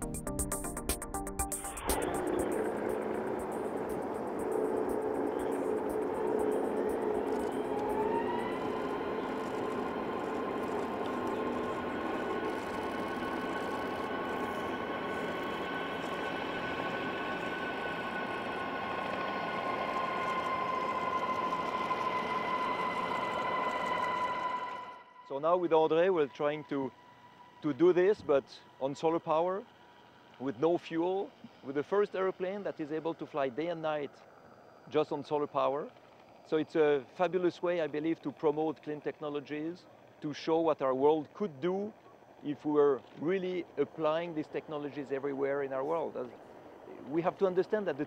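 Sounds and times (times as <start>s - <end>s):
electric propeller motors whining: 1.4s - 48.0s
rushing air noise: 1.5s - 25.2s.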